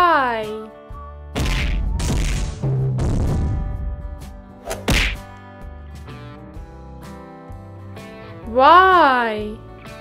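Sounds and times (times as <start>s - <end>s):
quiet background music: 0.0s - 2.9s, 3.6s - 10.0s.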